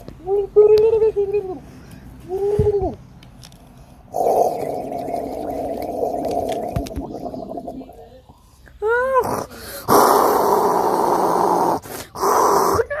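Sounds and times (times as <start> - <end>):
child making dinosaur roars: 9.2 - 13.0.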